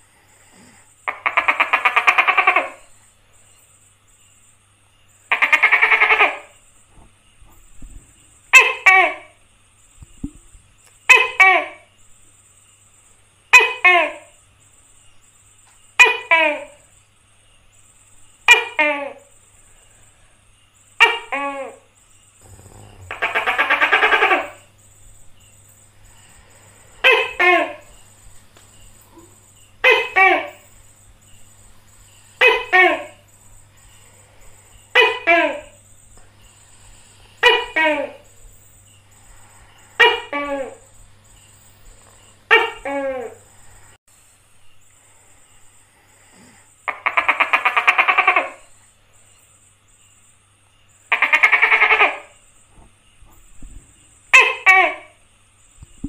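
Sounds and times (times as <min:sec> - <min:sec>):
gecko rattling calls: 0:00.6 - 0:04.4, 0:05.0 - 0:06.9, 0:20.8 - 0:44.0, 0:44.9 - 0:53.2
gecko two-syllable call: 0:05.2 - 0:06.6, 0:22.4 - 0:24.7, 0:46.8 - 0:48.8, 0:51.0 - 0:52.4.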